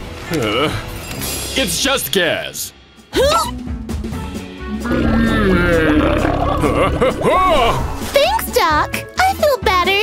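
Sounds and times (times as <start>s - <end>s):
long loud belch: 4.8s - 7.8s.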